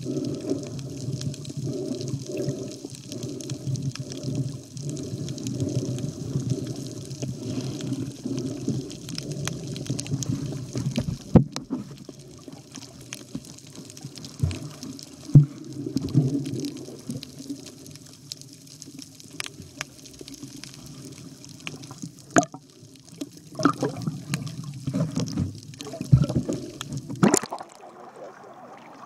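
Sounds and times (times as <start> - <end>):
water sloshing and splashing: 21.7 - 29.0.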